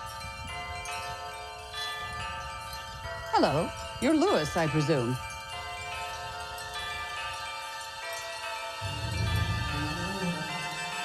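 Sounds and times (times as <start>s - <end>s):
chimes ringing: 0.0s - 11.0s.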